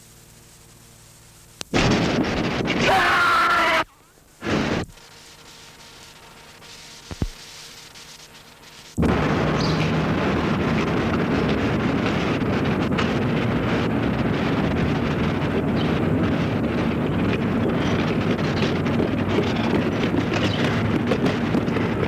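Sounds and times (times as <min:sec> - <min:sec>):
wind buffeting microphone: 0:09.0 - 0:22.0.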